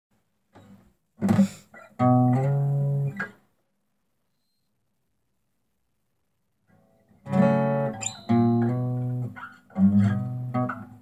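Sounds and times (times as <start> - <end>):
acoustic guitar strum and pluck: 0.6 - 3.4, 6.8 - 11.0.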